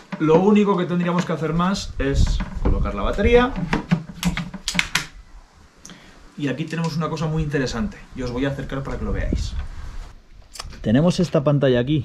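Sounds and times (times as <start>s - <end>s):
battery pack clicking into saw: 4.2s - 5.1s.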